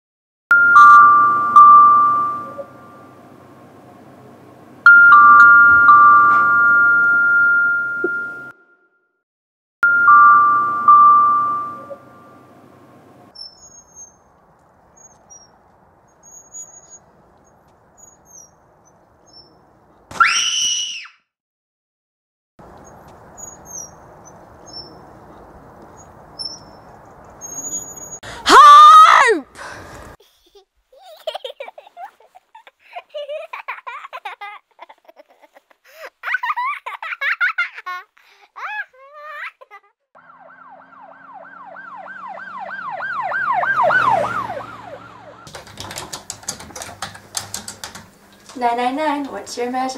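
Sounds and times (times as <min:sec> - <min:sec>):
ringing chime notes: 0:00.5 - 0:03.2, 0:04.9 - 0:09.0, 0:09.8 - 0:12.7
faint bird chirps: 0:13.4 - 0:14.3, 0:15.0 - 0:19.6.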